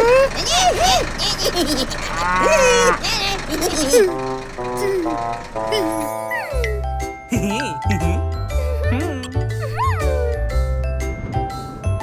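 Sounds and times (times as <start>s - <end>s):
cartoon cow mooing: 2.1s - 3.0s.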